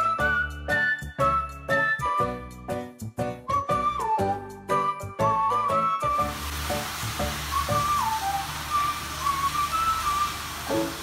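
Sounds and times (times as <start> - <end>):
slow high melody music: 0.0 - 11.0
water pouring into bath: 6.2 - 11.0.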